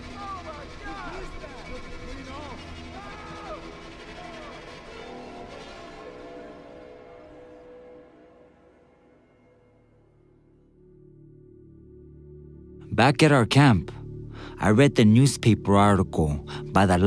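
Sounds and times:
distant voices screaming: 0:00.0 - 0:08.6
sustained music pad: 0:00.0 - 0:17.0.

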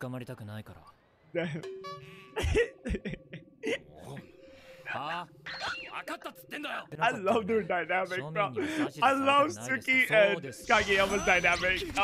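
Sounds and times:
man laughing: 0:02.4 - 0:04.2
character voices talking: 0:03.9 - 0:12.0.

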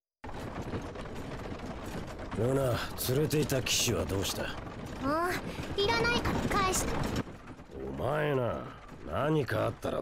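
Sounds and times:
carriage wheels rattling: 0:00.2 - 0:10.0.

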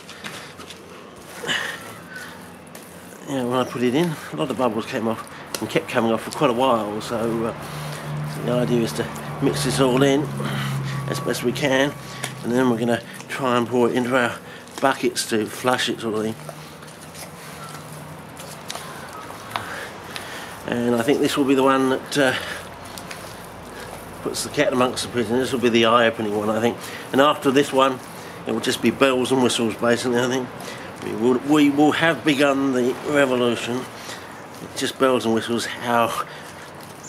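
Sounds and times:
hand stirring thick liquid: 0:00.0 - 0:37.0.

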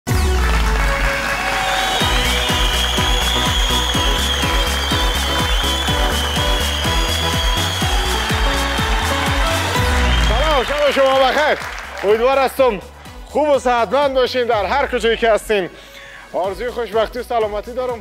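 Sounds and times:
game show theme music: 0:00.1 - 0:18.0.

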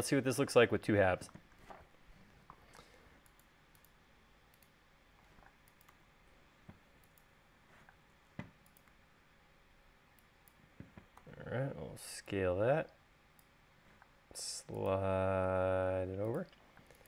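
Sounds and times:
keyboard and mouse clicks: 0:05.3 - 0:06.0, 0:06.7 - 0:07.3, 0:08.4 - 0:09.0.

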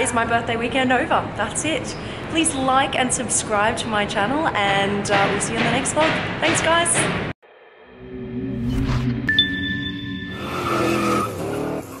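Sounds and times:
tyre squeal: 0:10.3 - 0:12.0.

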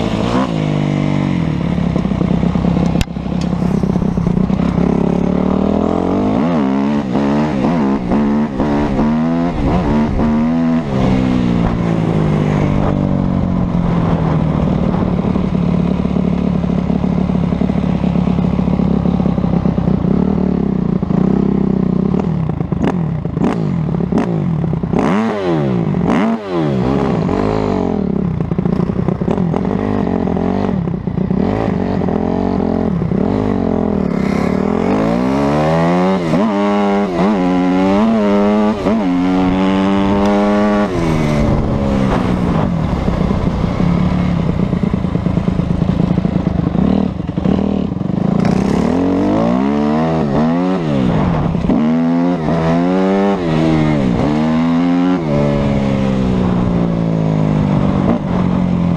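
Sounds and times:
motorcycle engine revving: 0:00.0 - 0:58.9.

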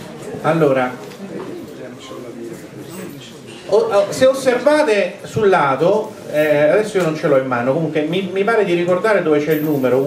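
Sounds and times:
quiet voices murmuring: 0:00.0 - 0:10.0.

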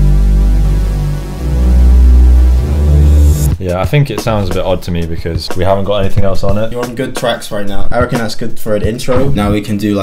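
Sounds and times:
synth bass line: 0:00.0 - 0:03.6.

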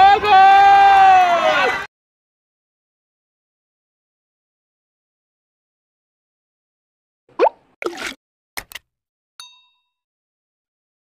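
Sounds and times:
rising pop: 0:07.4 - 0:08.2.

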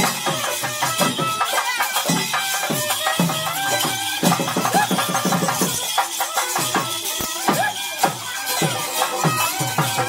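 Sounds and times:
fast drum strokes: 0:00.0 - 0:10.0
jingling metal bells and rattles: 0:00.0 - 0:10.0.

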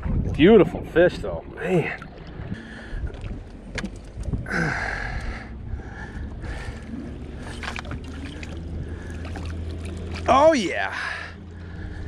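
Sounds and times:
water splashing against boat: 0:00.0 - 0:12.0.

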